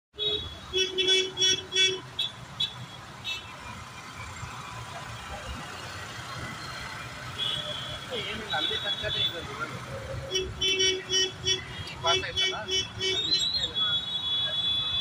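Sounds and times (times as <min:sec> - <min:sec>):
vehicle horns honking: 0:00.2 - 0:03.8, 0:07.3 - 0:15.0
idling traffic on wet road: 0:03.6 - 0:14.6.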